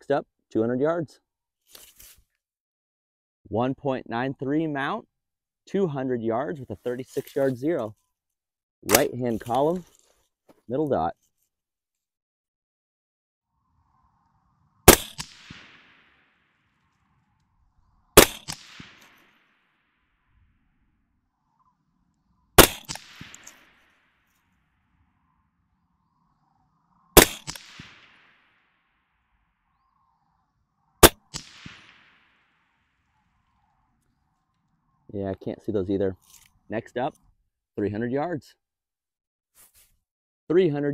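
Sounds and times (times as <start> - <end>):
suppressed rifle shots: 14.8 - 19.6, 22.5 - 24.0, 27.1 - 28.8, 31.0 - 33.8.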